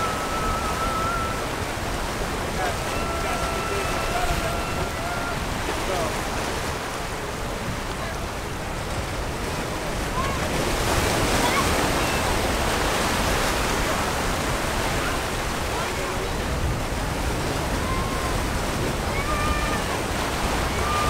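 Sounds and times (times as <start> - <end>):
ocean waves breaking on rocks: 0.0 - 21.0.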